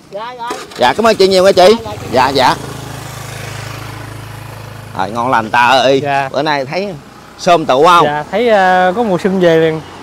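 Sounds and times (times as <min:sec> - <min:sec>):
motorbike engine idling: 0:00.2 - 0:08.7.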